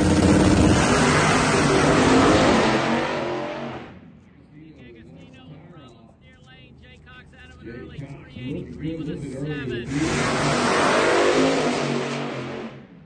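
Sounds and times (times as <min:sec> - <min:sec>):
drag cars accelerating: 0:00.0 - 0:13.0.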